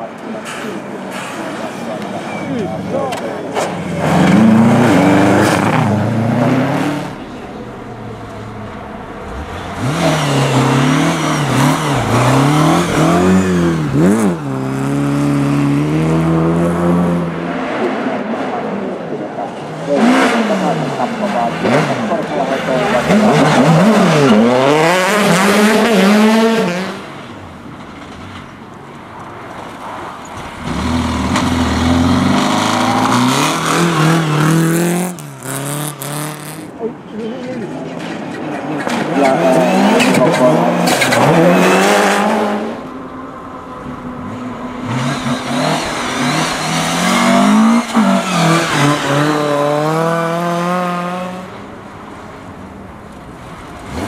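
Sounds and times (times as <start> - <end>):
rally cars revving past: 1.2 - 27.2, 30.5 - 36.8, 37.7 - 43.0, 43.7 - 52.2.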